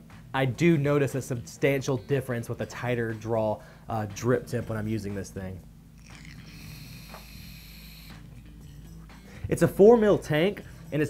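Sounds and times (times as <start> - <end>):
vape coil hissing during a draw: 6.0 - 8.4.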